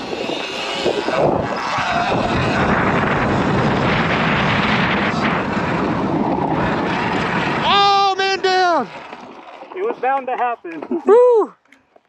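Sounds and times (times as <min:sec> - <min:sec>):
wind buffeting microphone: 0:00.0 - 0:10.0
person yelling: 0:07.6 - 0:08.9, 0:10.9 - 0:11.6.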